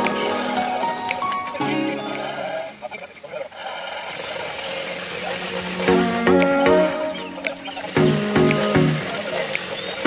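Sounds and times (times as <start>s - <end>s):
soft background music: 0.0s - 3.0s, 5.8s - 10.0s.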